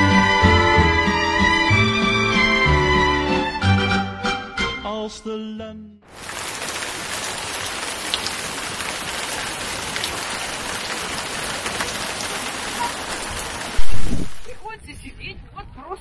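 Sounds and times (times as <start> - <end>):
waterfall splashing into pool: 6.1 - 14.6.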